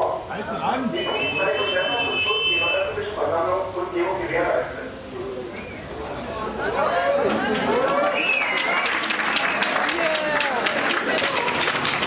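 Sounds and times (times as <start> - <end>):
people talking: 0.0 - 11.6
high-pitched signal tone: 1.0 - 2.9.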